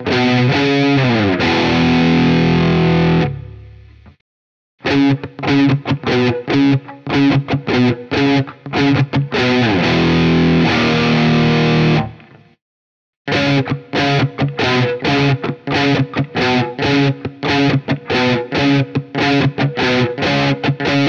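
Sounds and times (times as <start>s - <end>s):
distorted electric guitar riff: 0.0s - 4.2s, 4.8s - 12.6s, 13.3s - 21.0s.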